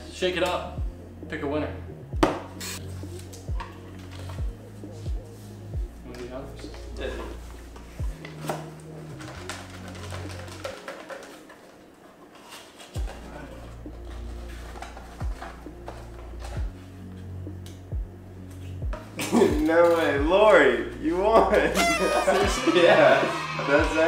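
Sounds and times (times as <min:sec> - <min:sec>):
background music with bass and beat: 0:00.0 - 0:10.7, 0:13.0 - 0:24.0
paper rattling in shaken cardboard box: 0:09.2 - 0:11.8.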